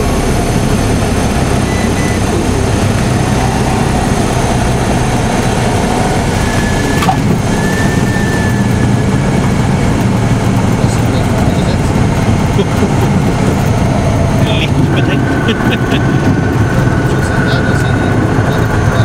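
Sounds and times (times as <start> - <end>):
light aircraft engine drone: 0.0 - 19.0.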